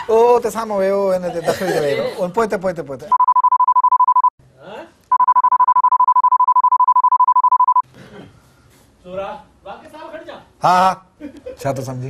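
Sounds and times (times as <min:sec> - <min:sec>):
censor bleep tone: 0:03.1 - 0:04.3, 0:05.1 - 0:07.8.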